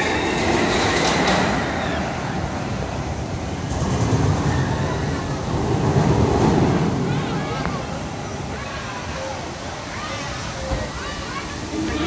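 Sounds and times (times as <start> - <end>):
amusement ride rushing past: 0.0 - 8.6.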